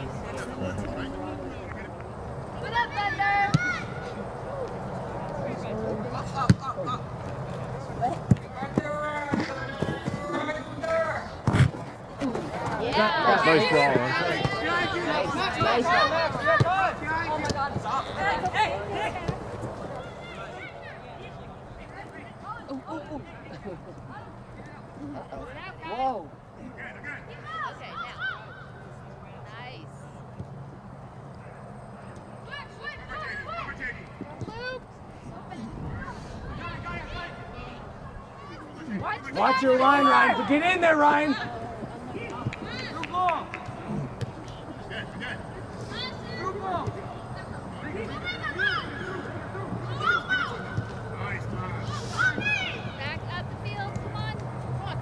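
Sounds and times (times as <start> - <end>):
low outdoor hum: 0.0 - 55.0
people shouting and calling: 2.6 - 7.0, 12.2 - 21.4, 32.4 - 34.8, 35.6 - 55.0.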